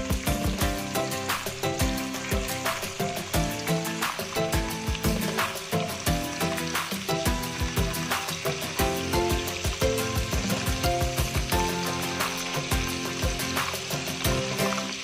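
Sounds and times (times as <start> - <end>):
background music with steady beat: 0.0 - 15.0
tofu sizzling in oil: 0.0 - 15.0.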